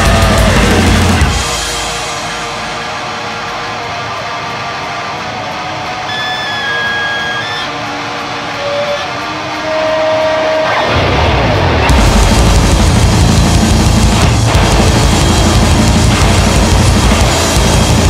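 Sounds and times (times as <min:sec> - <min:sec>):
high held tones: 0:00.0 - 0:11.0
distorted electric guitar ringing: 0:00.0 - 0:18.0.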